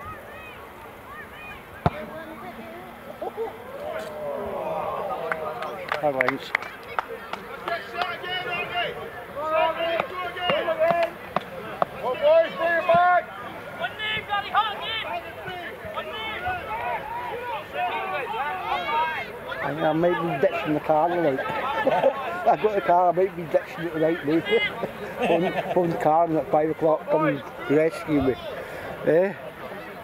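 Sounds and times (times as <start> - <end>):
people shouting: 8.2 - 11.2, 12.0 - 20.4.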